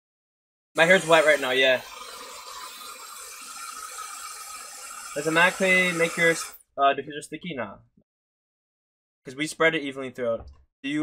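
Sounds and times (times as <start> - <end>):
hair dryer blowing air: 0.8 - 6.6.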